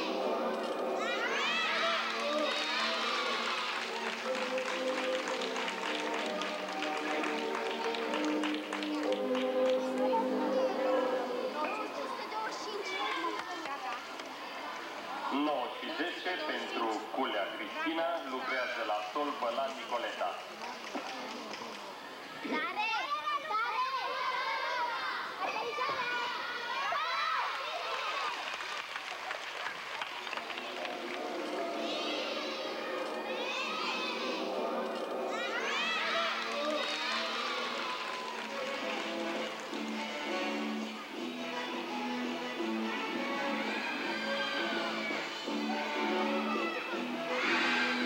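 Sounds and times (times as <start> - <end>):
girls calling out and chattering: 0.0 - 3.7, 9.2 - 17.2, 21.3 - 28.1, 31.2 - 48.0
music with held notes: 0.0 - 11.6, 36.2 - 48.0
girls cheering and shouting: 1.0 - 3.9, 22.6 - 28.4, 35.2 - 38.8, 42.8 - 48.0.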